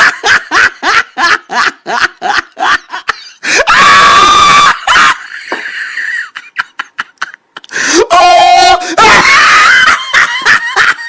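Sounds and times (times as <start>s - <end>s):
person laughing in bursts: 0.0s - 11.0s
high-pitched scream: 3.5s - 5.2s.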